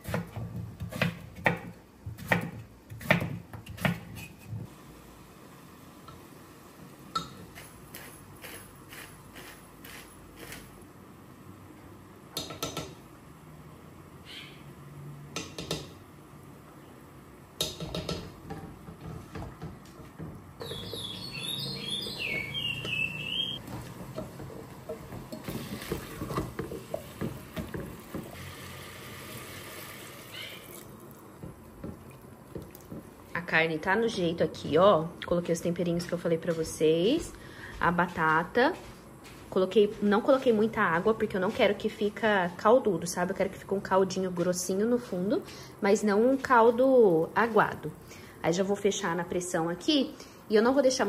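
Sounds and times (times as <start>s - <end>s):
wooden spoon tapping metal pot: 17.6s - 21.0s, 23.6s - 28.3s
liquid pouring: 28.0s - 31.2s.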